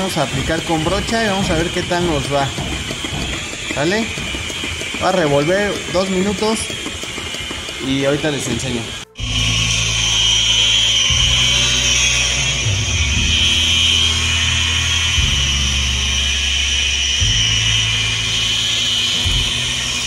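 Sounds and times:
power drill mixing whine: 0:00.0 - 0:20.0.

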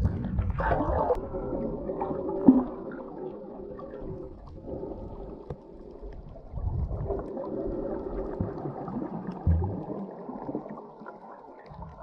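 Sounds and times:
underwater rumble of moving water: 0:00.0 - 0:12.0.

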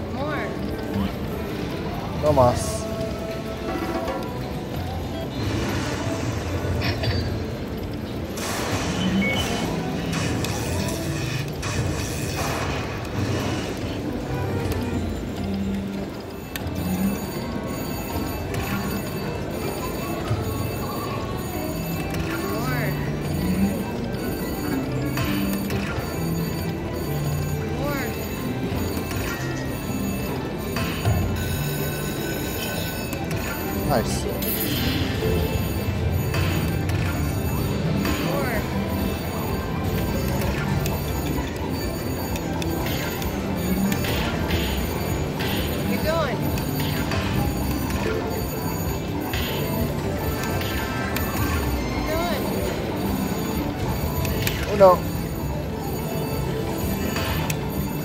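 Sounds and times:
slot machine bonus music: 0:00.0 - 0:58.0.

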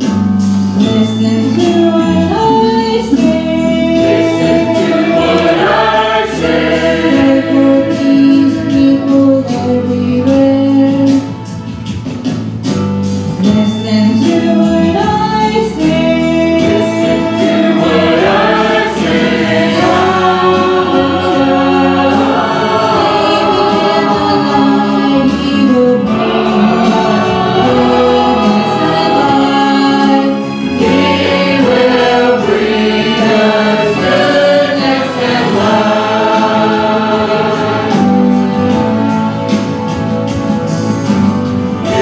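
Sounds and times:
choir singing a hymn: 0:01.0 - 0:09.9, 0:14.1 - 0:39.6, 0:41.8 - 0:42.0.

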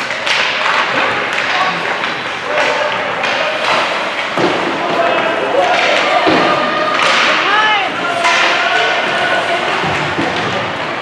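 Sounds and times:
crowd noise: 0:00.0 - 0:11.0
hockey stick hitting puck: 0:00.0 - 0:11.0
spectator shouting: 0:04.9 - 0:09.7.

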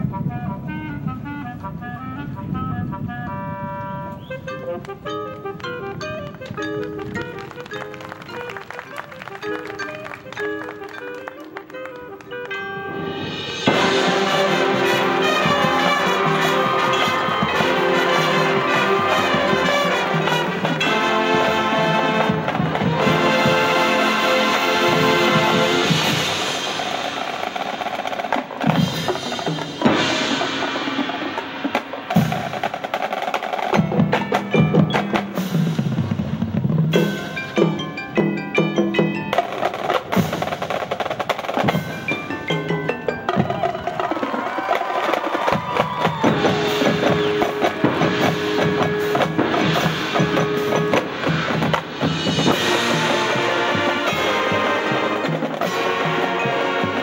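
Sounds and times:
brass chords: 0:00.0 - 0:44.1, 0:46.2 - 0:57.0
mallet keyboards: 0:02.0 - 0:57.0
drum strikes and rolls: 0:05.6 - 0:57.0.

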